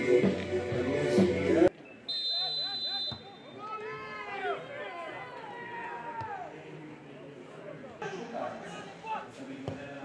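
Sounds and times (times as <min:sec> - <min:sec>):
players calling: 0:01.7 - 0:06.8
referee's whistle: 0:01.8 - 0:03.7.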